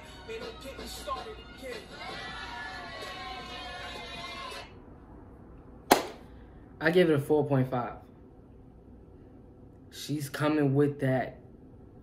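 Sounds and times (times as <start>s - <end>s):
rap voices over music: 0.0s - 4.7s.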